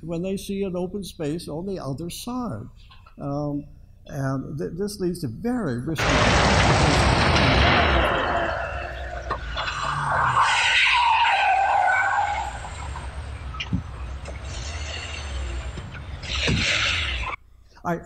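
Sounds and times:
car tyres squealing: 0:06.0 - 0:17.4.

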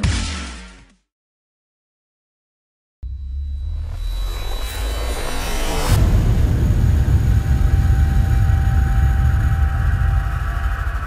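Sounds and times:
deep cinematic rumble: 0:03.0 - 0:11.0.

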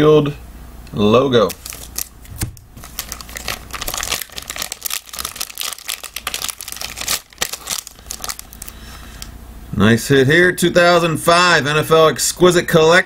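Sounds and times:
foil wrappers crinkling: 0:01.4 - 0:09.3.

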